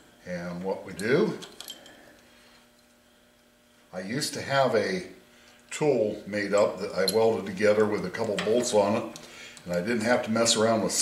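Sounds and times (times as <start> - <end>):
faint electrical hum: 0.0 - 11.0
person speaking: 3.9 - 11.0.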